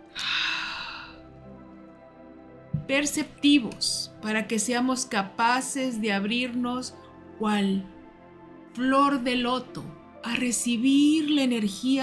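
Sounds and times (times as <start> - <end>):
soft background music: 0.0 - 12.0
loud breath: 0.1 - 1.3.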